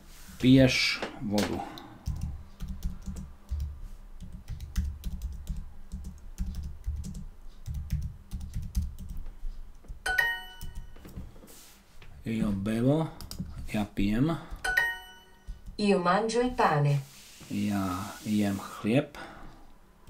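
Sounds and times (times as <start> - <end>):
computer keyboard typing: 2.0 - 11.1, 13.1 - 13.8.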